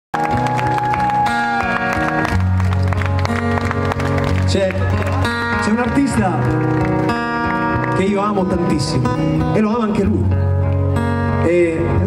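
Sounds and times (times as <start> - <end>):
acoustic guitar chords ringing: 1.2 - 12.0.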